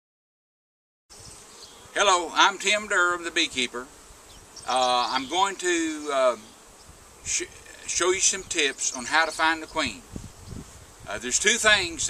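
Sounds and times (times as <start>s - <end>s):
honey bees buzzing: 1.1s - 12.0s.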